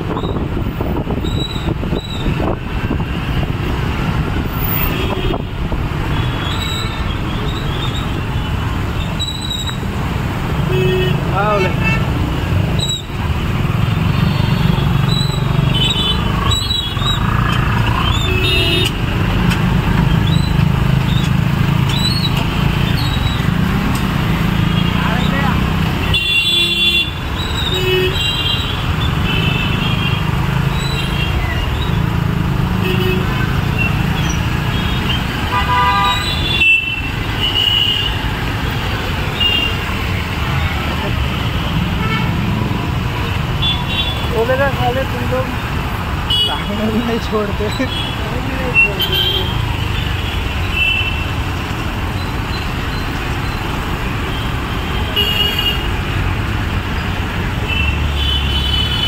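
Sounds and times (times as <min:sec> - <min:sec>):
car and motorbike engines: 0:00.0 - 0:59.0
car horn honks: 0:34.8 - 0:38.1.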